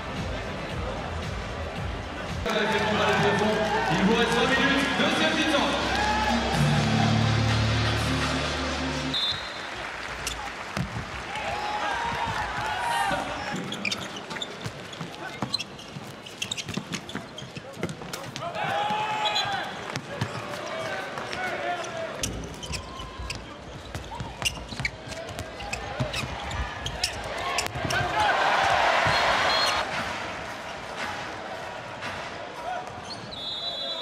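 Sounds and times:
crowd noise: 0.0 - 34.0
handball bouncing on court: 10.2 - 11.1, 12.0 - 21.5, 22.2 - 29.8
players shouting: 27.0 - 29.9.

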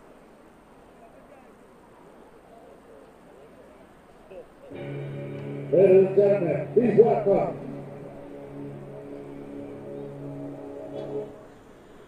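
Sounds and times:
music with held chord: 4.7 - 12.0
loud voice: 5.7 - 7.6.

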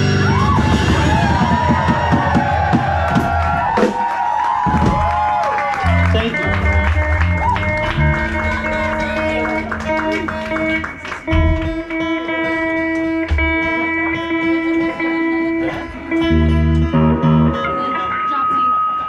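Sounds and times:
bass and guitar notes: 0.0 - 3.8, 4.7 - 19.0
audience cheering and whooping: 0.0 - 11.3
band chord ringing: 5.9 - 19.0.

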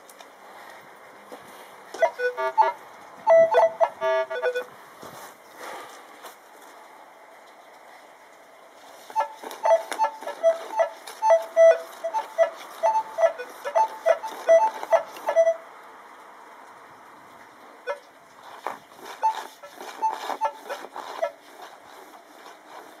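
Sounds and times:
metal detector beeping: 3.3 - 4.7, 9.2 - 15.6.

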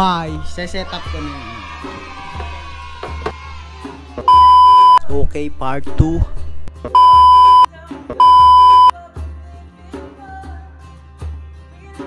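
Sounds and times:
background music: 0.0 - 12.0
loud electronic beep: 4.3 - 5.1, 7.0 - 8.9.

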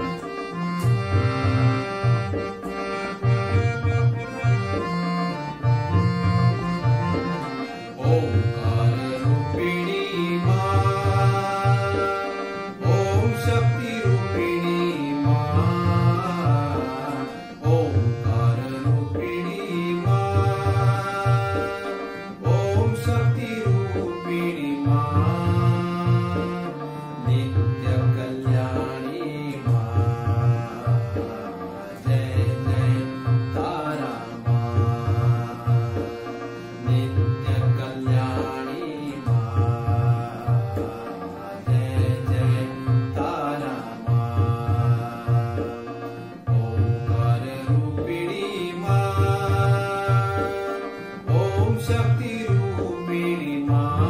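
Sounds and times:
harmonium melody: 0.0 - 54.0
tabla rhythm: 0.0 - 54.0.

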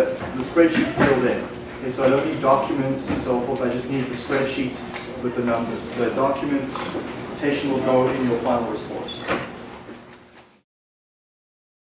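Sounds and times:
lecture room background noise: 0.0 - 10.6.

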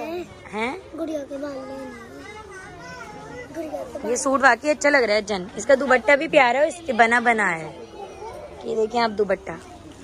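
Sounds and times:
indistinct voices talking quietly: 0.0 - 10.0.

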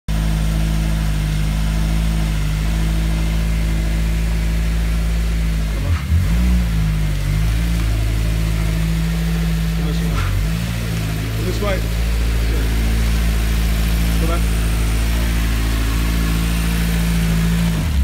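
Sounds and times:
car engine idling: 0.1 - 18.0.

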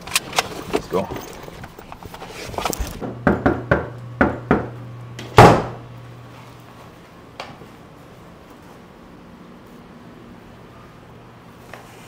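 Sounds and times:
steady low hum: 0.0 - 12.0
knocking on a door: 3.0 - 4.7.

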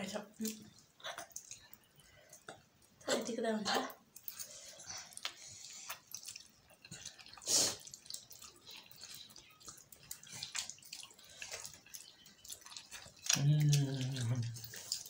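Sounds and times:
wet mouth clicks and smacks: 0.4 - 3.0, 4.1 - 15.0
person slurping noodles: 7.3 - 7.9.

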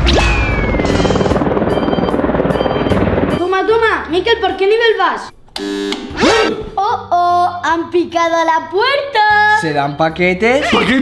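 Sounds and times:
helicopter rotor chopping: 0.2 - 5.3.

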